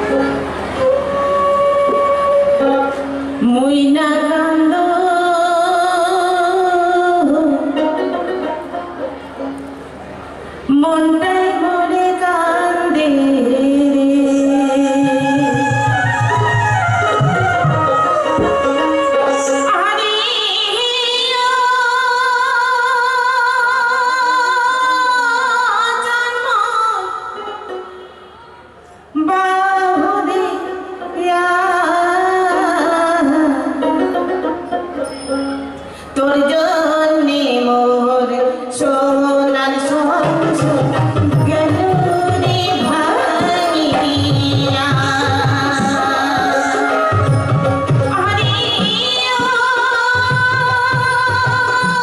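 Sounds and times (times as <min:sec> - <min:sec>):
folk instrumental melody: 0:00.0 - 0:03.6, 0:07.3 - 0:10.6, 0:14.5 - 0:20.3, 0:32.6 - 0:36.2, 0:40.2 - 0:52.0
woman singing: 0:00.8 - 0:08.6, 0:10.7 - 0:27.9, 0:29.2 - 0:34.5, 0:36.2 - 0:52.0.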